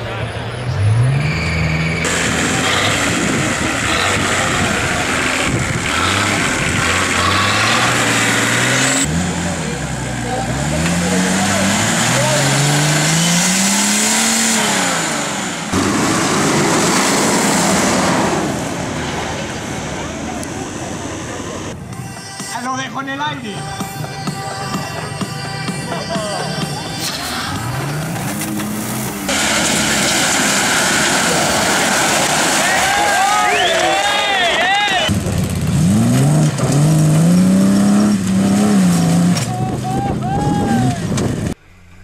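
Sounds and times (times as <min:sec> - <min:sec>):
off-road engines revving: 0:00.0 - 0:21.8, 0:25.0 - 0:42.0.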